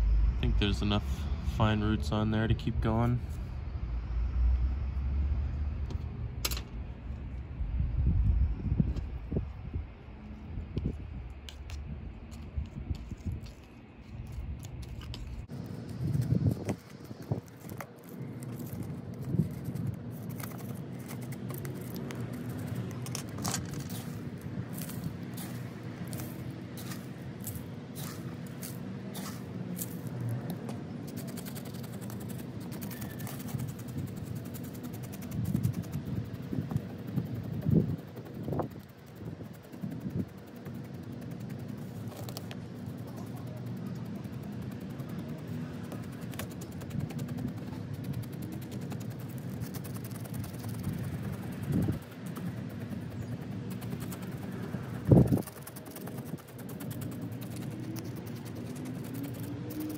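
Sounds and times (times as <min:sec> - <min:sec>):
steady low hum: 0:00.0 - 0:59.9
soil crunching in plastic pot: 0:11.5 - 0:30.6
chopstick scraping: 0:12.9 - 0:30.1, 0:31.1 - 0:35.9.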